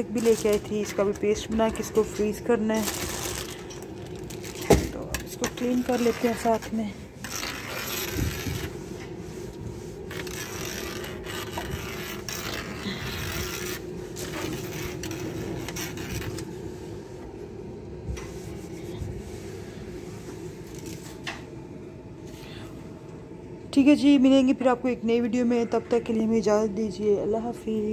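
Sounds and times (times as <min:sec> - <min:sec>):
low hum: 0:00.0 - 0:27.9
cloth rubbing on countertop: 0:05.4 - 0:17.2, 0:18.2 - 0:21.2.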